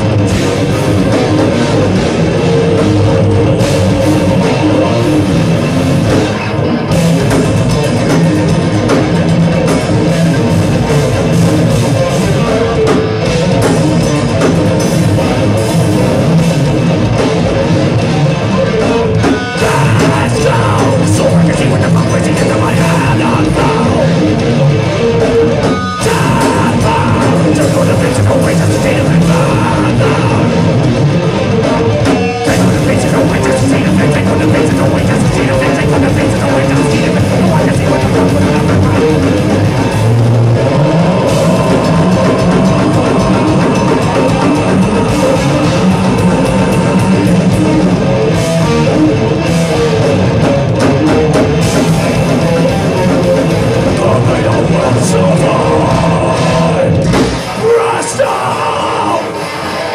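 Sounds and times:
drum and cymbal hits: 0:00.0 - 0:58.0
thrash metal band playing live: 0:00.0 - 0:59.9.

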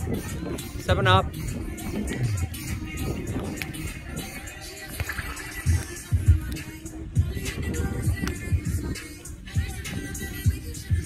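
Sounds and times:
music with bass beat: 0:00.0 - 0:11.0.

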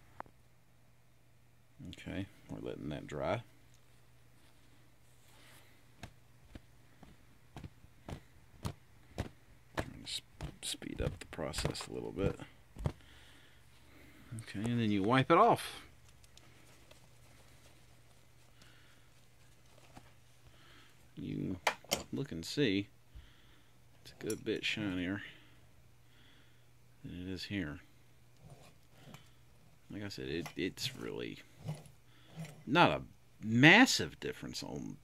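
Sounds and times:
low steady hum: 0:00.0 - 0:35.0
cloth rubbing on metal: 0:16.5 - 0:20.4, 0:30.0 - 0:32.8.

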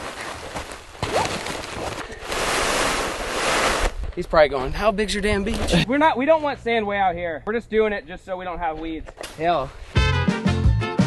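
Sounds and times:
plastic fabric rustling and crinkling: 0:00.0 - 0:04.1.

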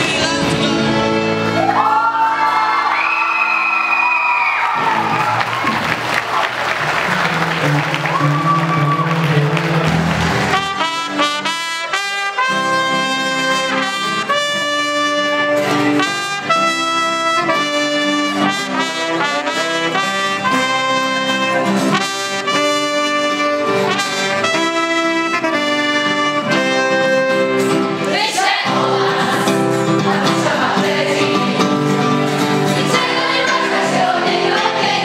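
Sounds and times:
acoustic guitar chords: 0:00.0 - 0:01.7, 0:06.8 - 0:35.0
live band music: 0:00.0 - 0:02.6, 0:04.7 - 0:35.0
trumpet playing a melody: 0:10.4 - 0:27.8.

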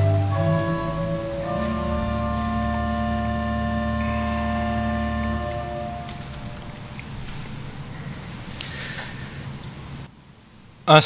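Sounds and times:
pipe organ chord: 0:00.0 - 0:08.2.

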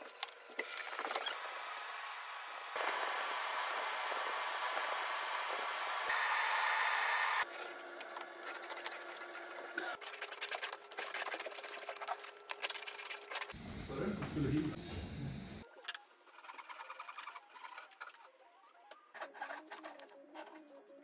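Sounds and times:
saw cutting wood: 0:01.1 - 0:07.5
table saw whining: 0:01.1 - 0:07.5.

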